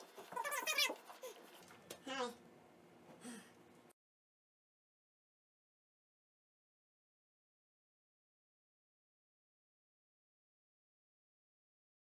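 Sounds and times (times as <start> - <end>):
animal whining: 0.0 - 1.5.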